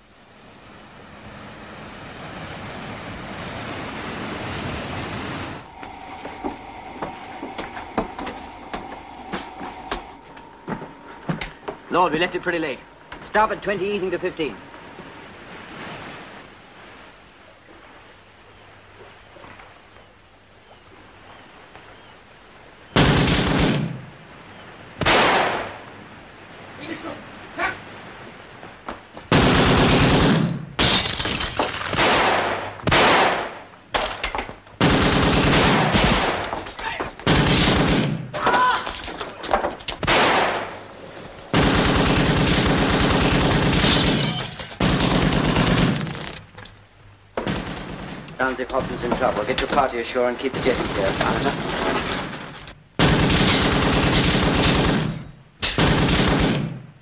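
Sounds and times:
low steady hum: 0:00.0 - 0:36.6
machine-gun fire bursts: 0:29.3 - 0:30.4, 0:34.8 - 0:36.5, 0:37.2 - 0:38.2, 0:41.5 - 0:44.2, 0:44.8 - 0:46.2, 0:47.4 - 0:48.2, 0:53.0 - 0:55.2, 0:55.8 - 0:56.8.

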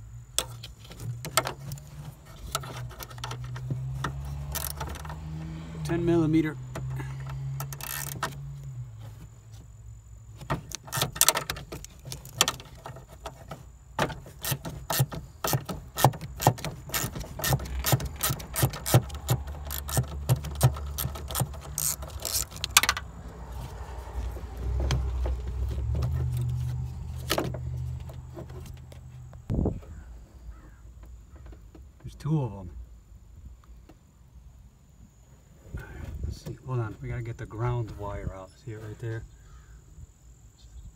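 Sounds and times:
wrench ratcheting clicks: 0:04.5 - 0:05.2, 0:07.6 - 0:08.3, 0:14.4 - 0:23.0.

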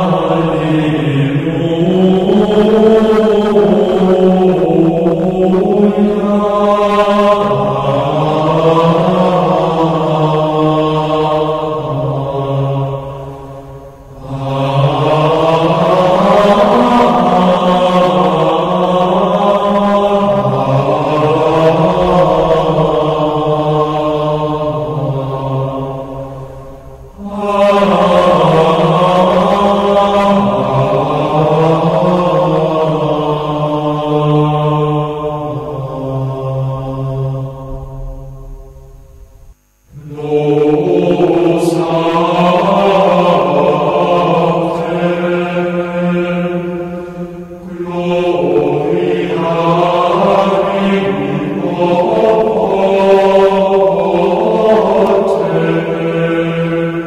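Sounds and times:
devotional chant: 0:00.0 - 0:57.0.

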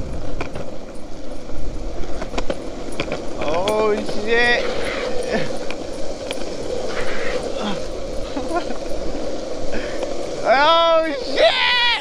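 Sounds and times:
longboard wheels rolling on asphalt: 0:00.0 - 0:12.0
man shouting: 0:10.5 - 0:12.0.

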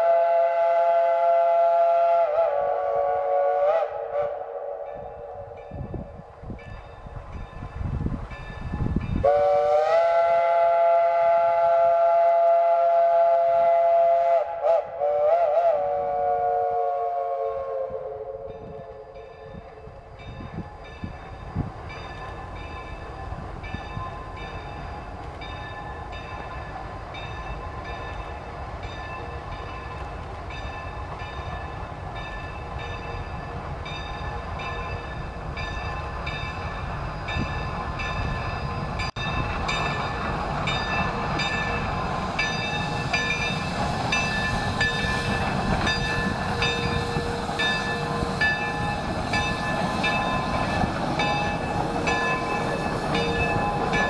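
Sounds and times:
chime steam whistle: 0:00.0 - 0:54.0
locomotive exhaust and running gear: 0:00.0 - 0:54.0.

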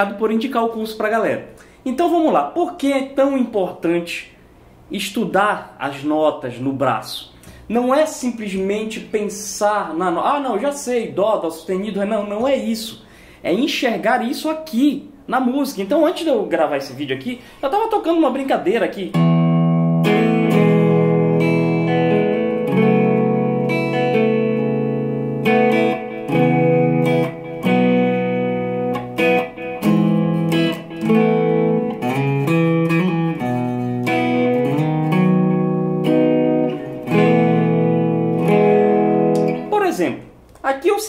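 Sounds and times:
electric guitar chords: 0:19.1 - 0:39.7.

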